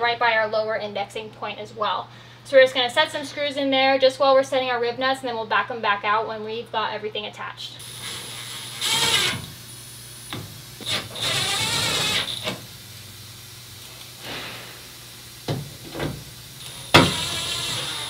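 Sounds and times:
cordless drill driving screws: 7.8 - 9.6, 10.3 - 12.6, 16.6 - 18.0.

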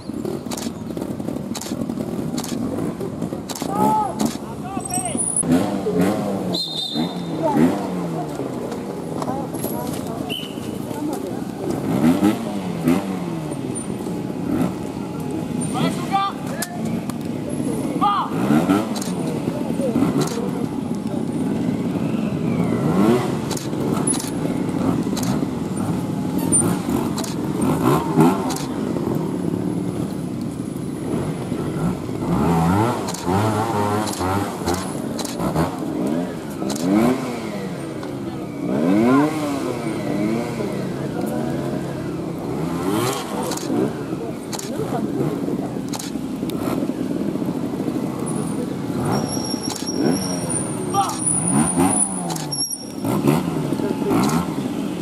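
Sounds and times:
motorcycle engines revving: 0.0 - 55.0
camera shutter clicks: 28.5 - 28.7, 35.2 - 35.4, 36.7 - 36.9, 45.9 - 46.2, 49.7 - 50.0.

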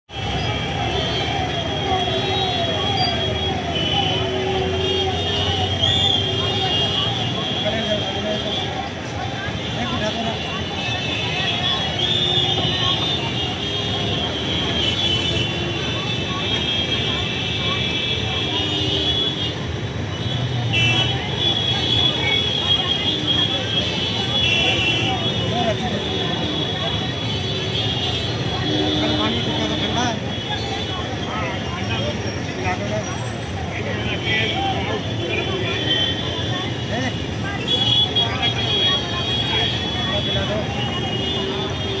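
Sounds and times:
many people talking: 0.0 - 42.0
road traffic: 0.0 - 42.0.

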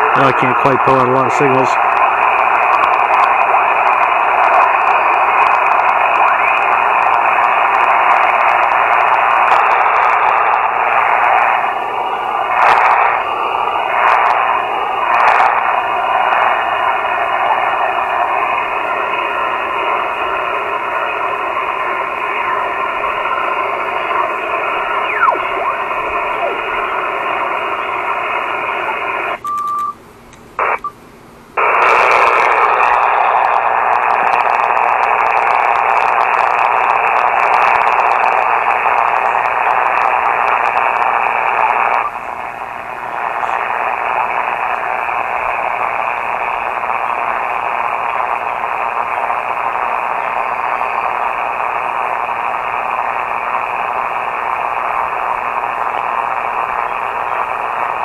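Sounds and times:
radio receiver static and hiss: 0.0 - 58.0
short beep: 29.4 - 30.0.

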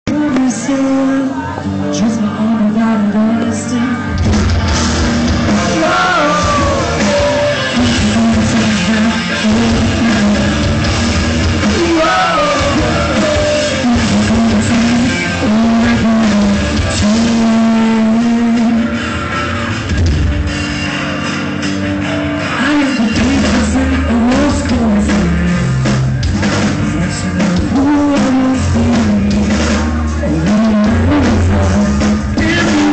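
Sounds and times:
person singing: 0.1 - 4.2, 5.4 - 10.9, 11.6 - 19.6, 22.4 - 26.0, 26.8 - 32.9
live rock band: 0.1 - 32.9.

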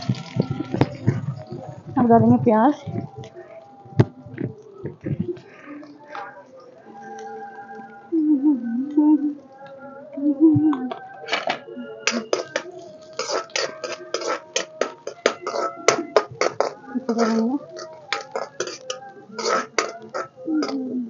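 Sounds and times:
onions sizzling in hot oil: 0.0 - 1.0, 12.2 - 20.7
metal spatula clacking on pan: 12.1 - 20.8.

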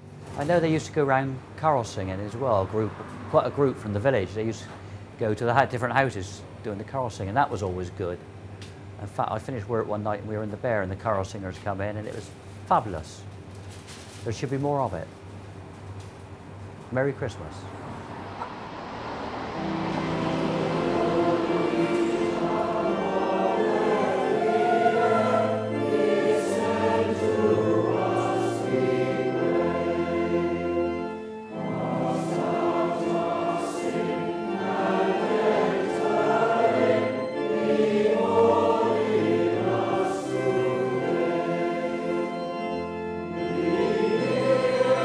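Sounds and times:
choir singing: 17.9 - 45.0.

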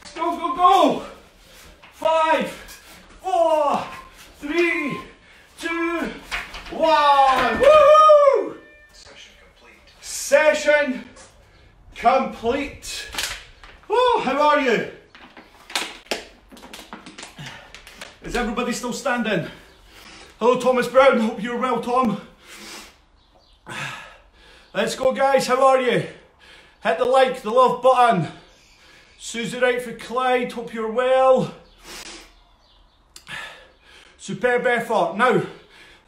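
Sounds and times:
man breathing out hard: 23.6 - 24.8.

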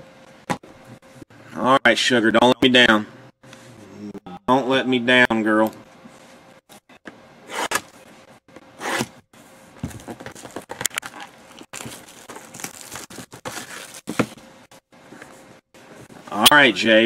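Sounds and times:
plastic wrapping tearing: 11.0 - 14.1.

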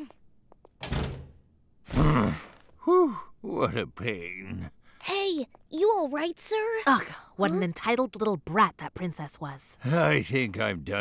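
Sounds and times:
door shutting with dull thud: 0.8 - 1.4.

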